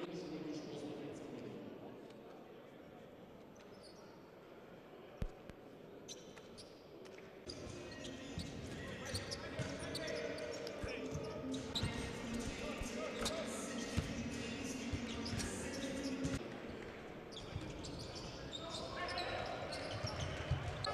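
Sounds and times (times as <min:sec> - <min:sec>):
murmur of crowd voices: 0:00.0 - 0:20.9.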